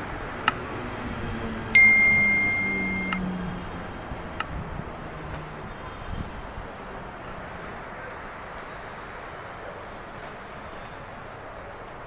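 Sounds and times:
electric train slowing to a stop: 0.0 - 11.4
high electronic beep: 1.8 - 3.2.

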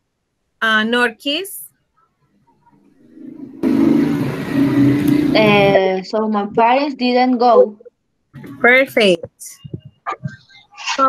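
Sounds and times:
low hum: 2.8 - 6.7
loud background noise: 3.1 - 5.9, 8.4 - 11.0.

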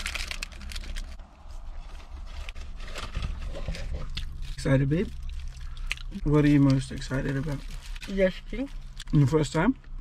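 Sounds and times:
paper bag rustling: 0.0 - 4.7
person chewing bread: 3.4 - 6.8.

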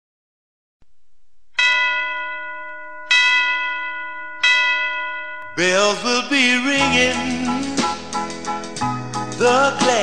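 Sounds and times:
bell strikes ringing: 1.6 - 5.9.

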